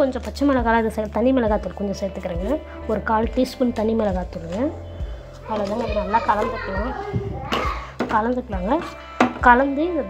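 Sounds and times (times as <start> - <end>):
children talking: 5.4 - 8.9.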